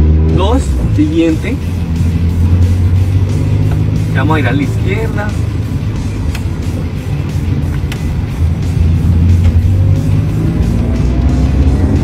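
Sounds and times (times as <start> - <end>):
background music: 0.0 - 12.0
car engine revving: 0.0 - 12.0
rising whine: 1.6 - 12.0.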